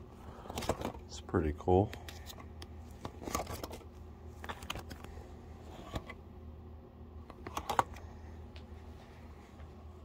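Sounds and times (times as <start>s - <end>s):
plastic binder pages clicking: 1.8s - 5.1s, 7.3s - 8.0s.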